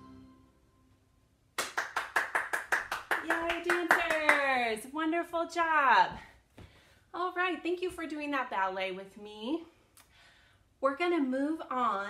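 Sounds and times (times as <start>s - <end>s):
music: 0.0s - 1.2s
hands clapping rapidly: 1.6s - 4.6s.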